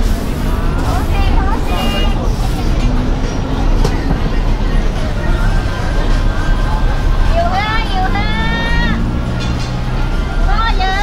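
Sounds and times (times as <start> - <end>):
indistinct chatter: 0.0 - 11.0
steady low rumble: 0.0 - 11.0.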